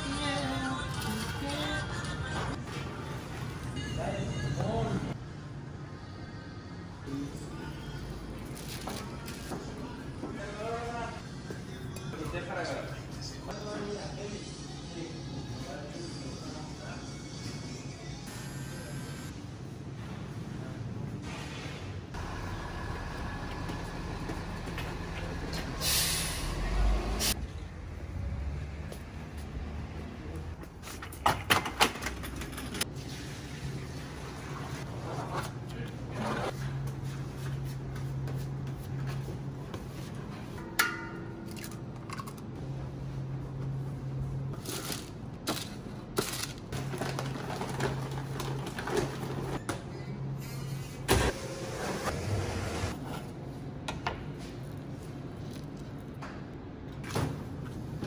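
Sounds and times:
air brake hiss: 25.8s - 26.6s.

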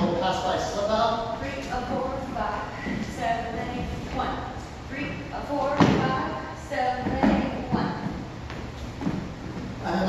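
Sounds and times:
footstep thuds: 5.7s - 6.3s, 7.0s - 9.8s.

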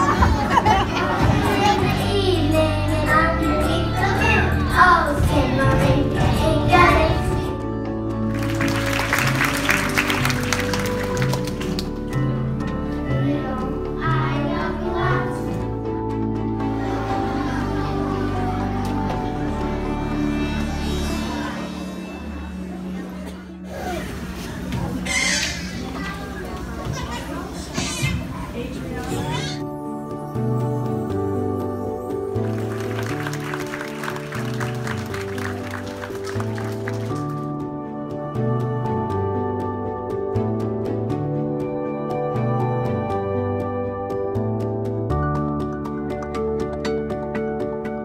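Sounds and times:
children's choir singing: 0.0s - 7.4s, 13.0s - 22.3s
musical accompaniment with bass: 0.0s - 24.1s, 29.3s - 48.0s.

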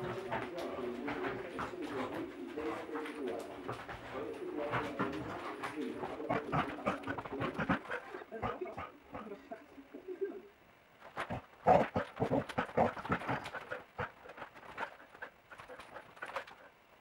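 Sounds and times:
dog paws thudding on floor: 0.0s - 8.0s.

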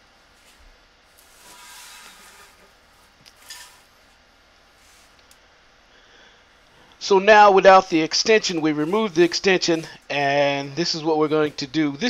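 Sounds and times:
plastic parts rustling and scraping: 1.2s - 3.9s.

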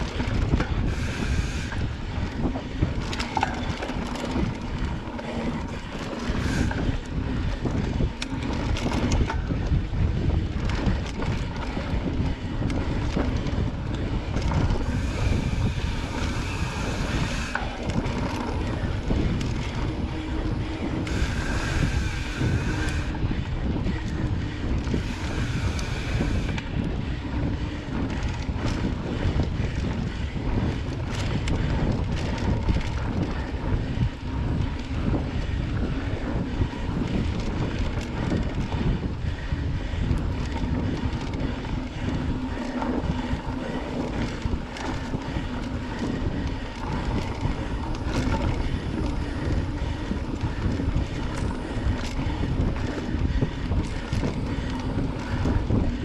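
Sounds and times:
wind rumble on microphone: 0.0s - 56.0s
tyres rolling on dirt: 1.7s - 56.0s
bike knocks and rattles: 2.3s - 21.2s.

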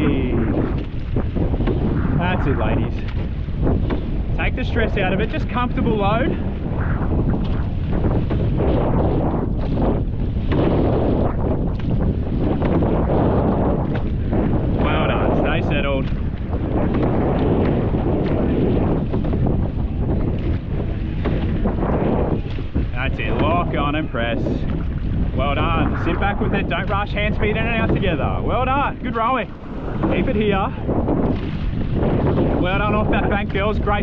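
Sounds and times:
water rushing along hull: 0.0s - 34.0s
wind buffeting microphone: 0.0s - 34.0s.

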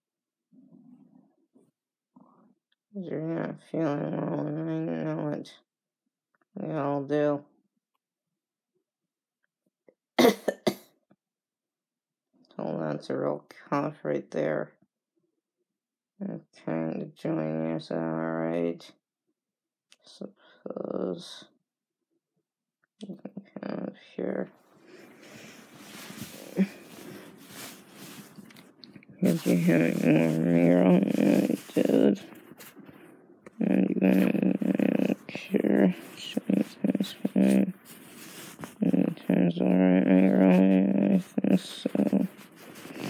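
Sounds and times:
person coughing: 10.2s - 10.9s
bedding rustling against phone: 24.7s - 43.0s.

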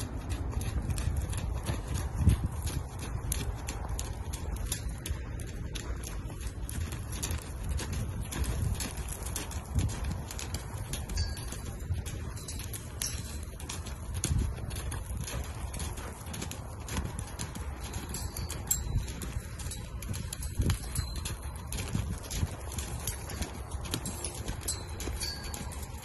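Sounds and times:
hoofbeats on soft dirt: 0.0s - 26.0s.

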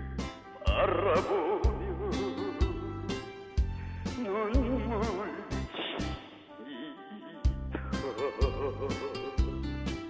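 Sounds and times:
trot backing band: 0.0s - 4.0s, 7.4s - 10.0s
drum beats: 0.0s - 6.3s, 7.5s - 10.0s
person singing with vibrato: 0.6s - 3.2s.

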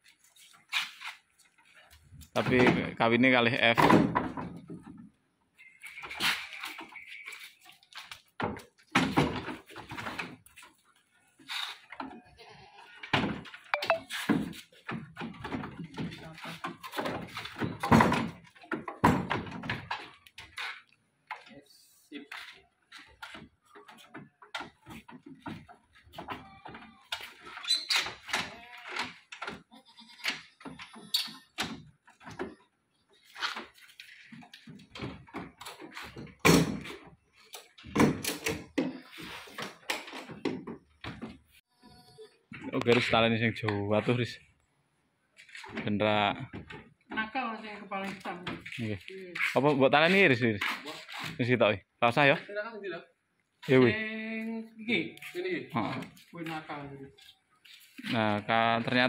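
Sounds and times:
goats bleating: 12.2s - 13.0s, 29.7s - 31.3s.

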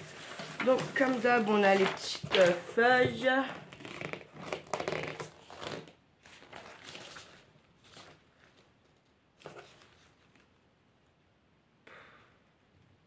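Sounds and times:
paper leaflets rustling: 0.0s - 3.5s.

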